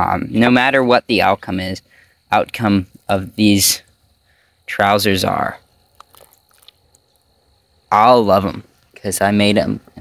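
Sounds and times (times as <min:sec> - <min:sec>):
man speaking: 0:00.0 - 0:03.9, 0:04.7 - 0:05.7, 0:07.9 - 0:10.0
mouth clicks: 0:05.9 - 0:07.3.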